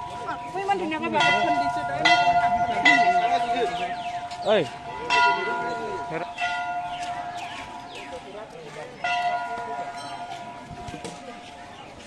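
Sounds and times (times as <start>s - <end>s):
temple bell ringing: 0.0s - 11.7s
voices of people: 0.0s - 12.0s.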